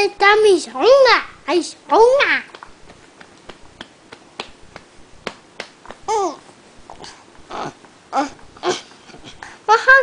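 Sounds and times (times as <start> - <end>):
baby babbling: 6.1 - 6.4.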